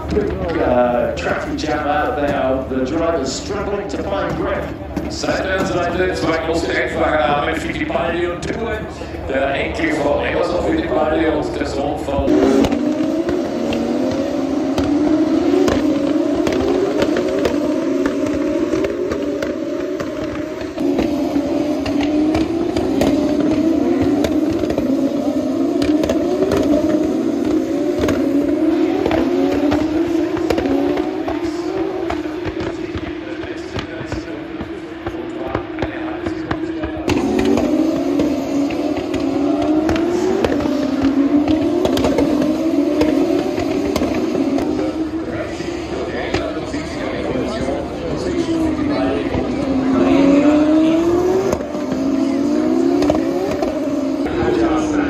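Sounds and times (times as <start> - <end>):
racing car engines accelerating: 0.0 - 55.0.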